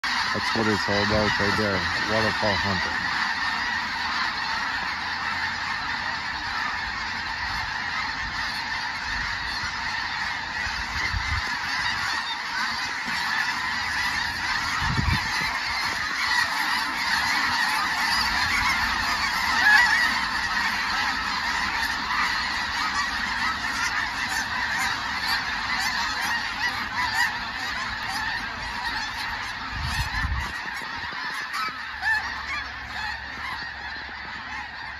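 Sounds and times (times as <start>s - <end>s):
geese honking: 0.0s - 34.9s.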